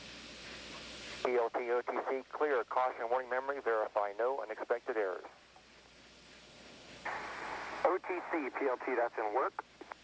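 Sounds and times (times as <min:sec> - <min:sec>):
radio static hiss: 0:00.0 - 0:10.0
radio voice: 0:01.2 - 0:05.3, 0:07.8 - 0:09.6.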